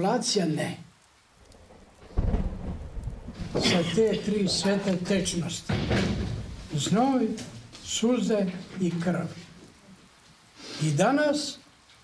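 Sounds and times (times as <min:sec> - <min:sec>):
deep rumble: 0:01.4 - 0:06.7.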